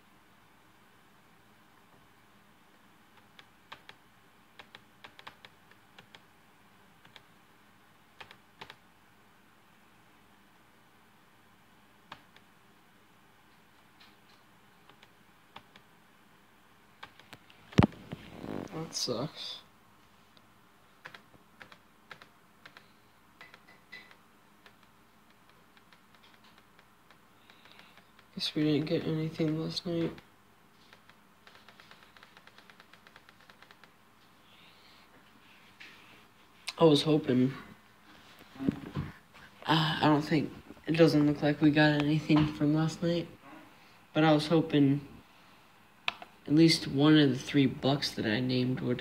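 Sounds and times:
faint irregular clicking: 20.3s - 28.3s.

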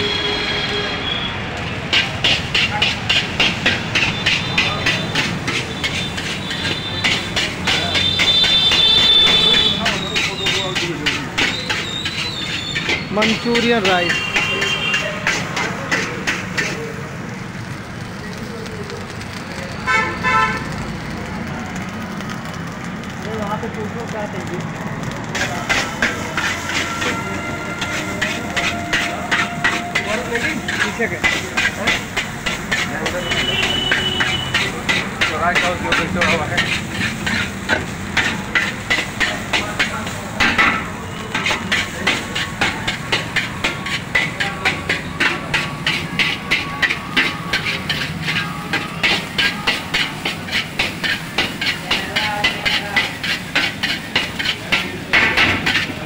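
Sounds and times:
vehicle horn toot: 0.0s - 1.4s, 7.8s - 10.6s, 14.0s - 15.2s, 19.9s - 20.6s, 26.8s - 30.3s, 33.0s - 34.7s
metal ladle clanking on steel wok: 27.8s - 56.0s.

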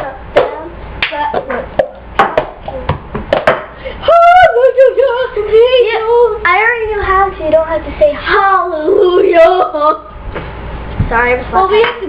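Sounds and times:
plastic cup knocking on counter: 1.8s - 3.7s.

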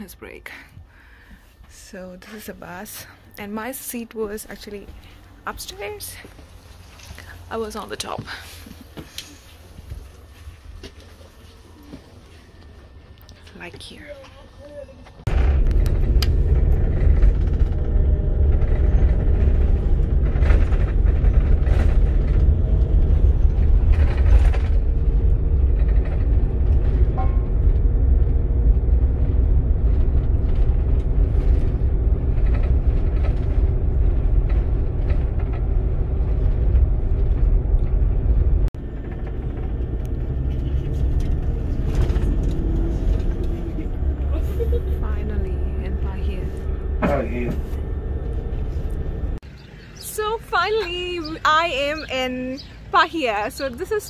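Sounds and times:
coach engine low rumble: 0.0s - 54.0s.

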